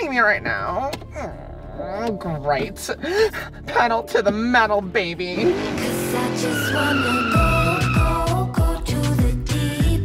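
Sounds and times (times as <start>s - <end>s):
car tyres squealing: 5.4s - 8.4s
music with thumping beat: 7.4s - 10.0s.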